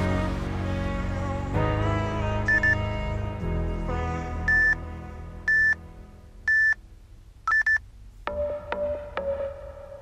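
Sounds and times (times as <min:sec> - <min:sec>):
upbeat background music: 0:00.0 - 0:06.7, 0:08.3 - 0:10.0
timer beeps: 0:02.5 - 0:02.8, 0:04.5 - 0:04.8, 0:05.5 - 0:05.8, 0:06.5 - 0:06.8, 0:07.5 - 0:09.4.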